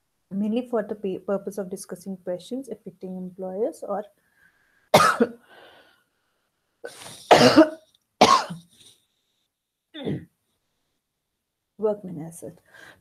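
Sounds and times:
woman coughing: 5.0 - 5.4, 6.9 - 8.7, 10.0 - 10.3.

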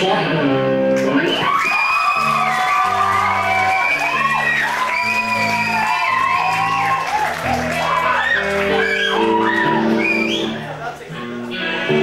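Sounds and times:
electric guitars with bent notes: 0.0 - 12.0.

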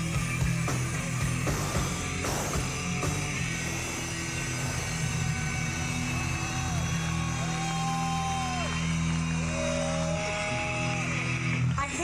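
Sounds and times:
steady low drone: 0.0 - 11.9.

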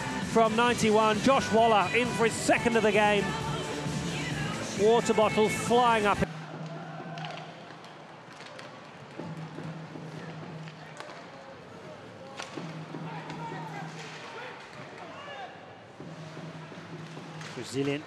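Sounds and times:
hockey sticks and puck knocks: 7.2 - 11.4, 12.2 - 15.1, 17.0 - 18.0.

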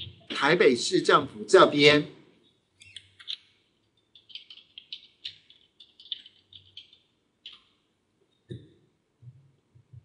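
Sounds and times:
typing on computer keyboard: 2.8 - 7.8.

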